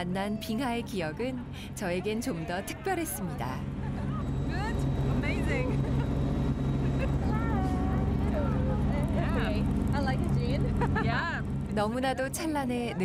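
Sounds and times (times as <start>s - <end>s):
boat engine humming: 0.0s - 13.0s
passengers talking: 0.0s - 13.0s.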